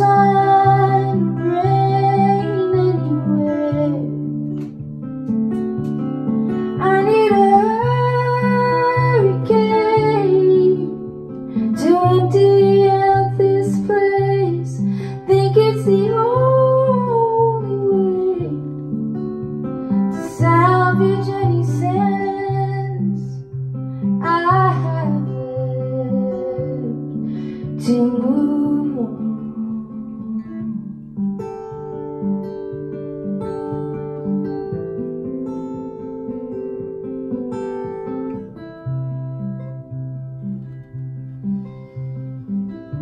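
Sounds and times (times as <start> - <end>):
strummed acoustic guitar: 0.0 - 43.0.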